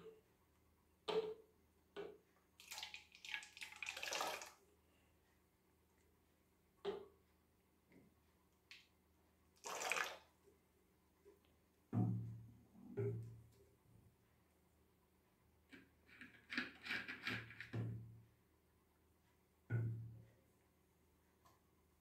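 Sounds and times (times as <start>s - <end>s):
liquid pouring into plastic bottle: 2.6s - 4.6s, 9.6s - 10.2s.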